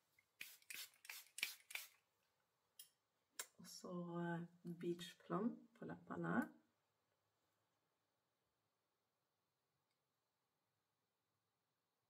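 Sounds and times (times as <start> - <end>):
spray bottle spritzing: 0.4 - 2.0.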